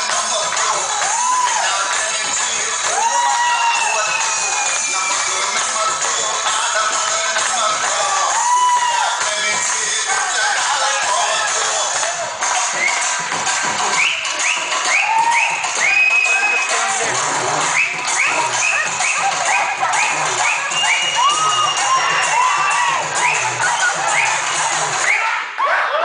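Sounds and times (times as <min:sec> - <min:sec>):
dance music over speakers: 0:00.0 - 0:26.0
audience cheering and whooping: 0:00.8 - 0:02.0, 0:02.7 - 0:05.8, 0:07.8 - 0:09.2, 0:13.9 - 0:26.0.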